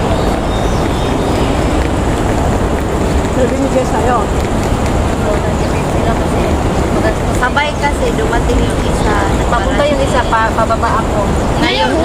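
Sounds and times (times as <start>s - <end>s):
women talking: 3.3s - 4.4s, 5.1s - 12.0s.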